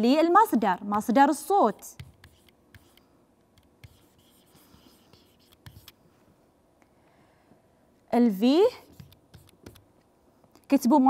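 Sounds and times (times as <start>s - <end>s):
stylus scratching and tapping: 1.8s - 6.0s, 8.8s - 10.1s.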